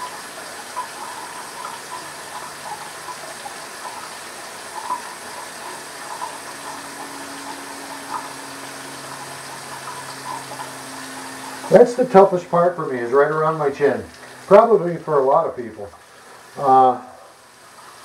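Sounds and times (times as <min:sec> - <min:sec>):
low steady hum: 0:00.0 - 0:18.0
steady rushing hiss: 0:00.0 - 0:18.0.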